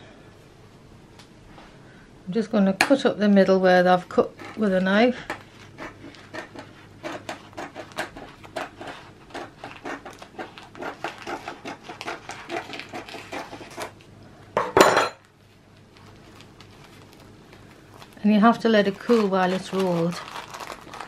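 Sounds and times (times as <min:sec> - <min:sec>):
scissors snipping sponge cake: 0:04.2 - 0:14.0, 0:18.6 - 0:21.0.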